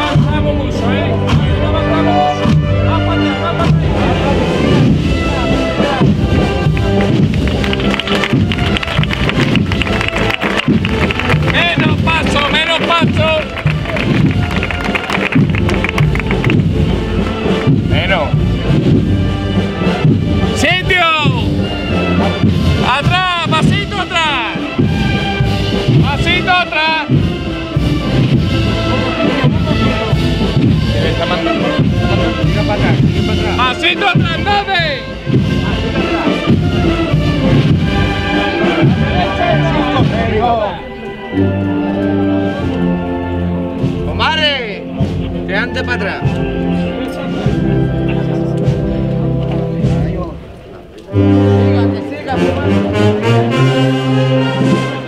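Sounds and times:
brass band playing a march: 0:00.0 - 0:55.0
crowd voices: 0:00.0 - 0:55.0.

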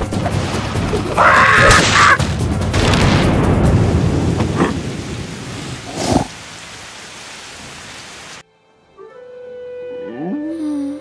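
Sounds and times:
heavy rain: 0:00.0 - 0:08.4
thunder rumble: 0:00.0 - 0:08.4.

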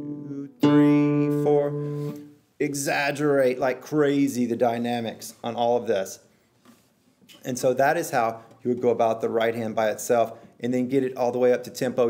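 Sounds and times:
classical guitar plucked notes: 0:00.0 - 0:02.4.

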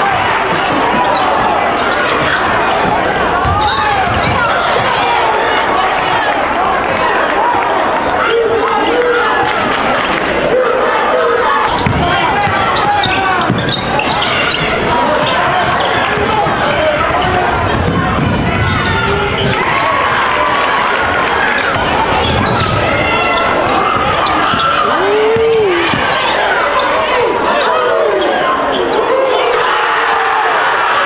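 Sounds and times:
crowd voices and shouts: 0:00.0 - 0:31.0.

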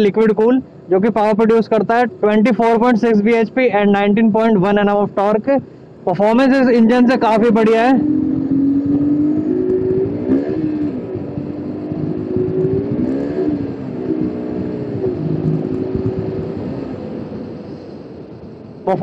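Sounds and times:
motorcycle engine revving: 0:06.7 - 0:17.7.

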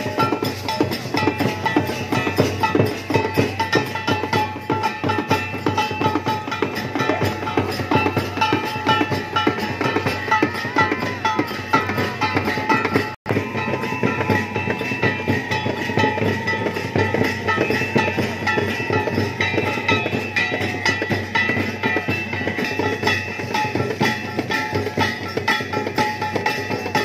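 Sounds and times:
devotional music with drums: 0:00.0 - 0:27.0.

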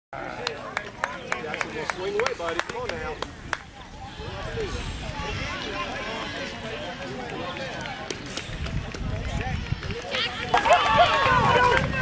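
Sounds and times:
chatter of voices: 0:00.2 - 0:12.0
wind on microphone: 0:02.9 - 0:06.7, 0:08.3 - 0:12.0.

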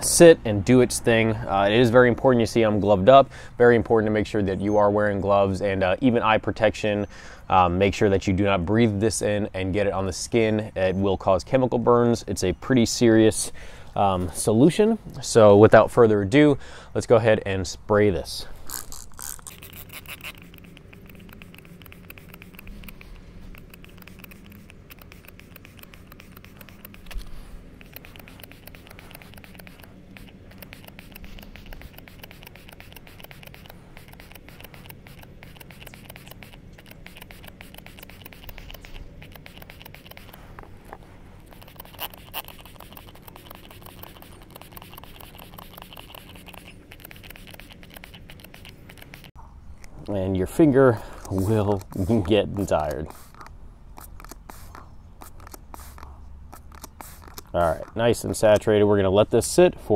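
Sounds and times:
trigger sprayer clicking and spraying: 0:18.7 - 0:49.4, 0:51.1 - 0:58.7.

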